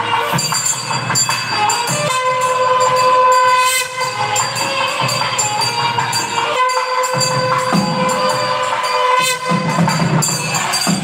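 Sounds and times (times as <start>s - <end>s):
double-reed pipe melody: 0.0s - 11.0s.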